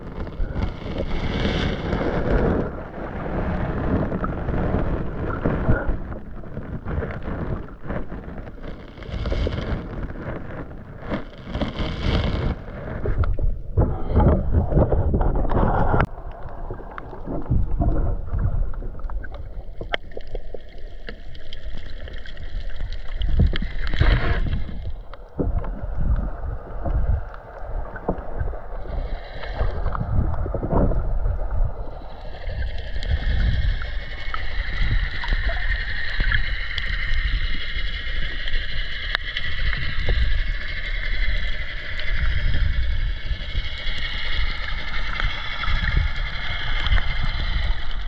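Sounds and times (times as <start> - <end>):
water rushing against camera housing: 0.0 - 31.8.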